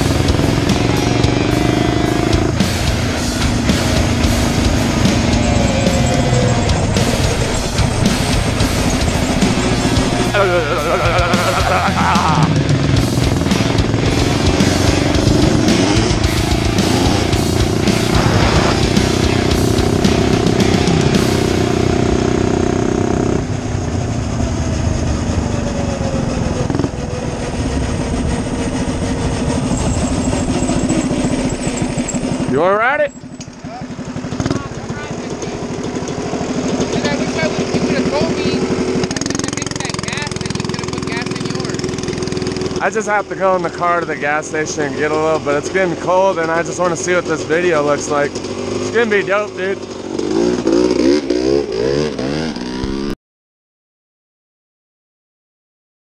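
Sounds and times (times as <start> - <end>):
small motorbike engine running: 0.0 - 53.2
wind rushing over microphone: 23.4 - 32.5.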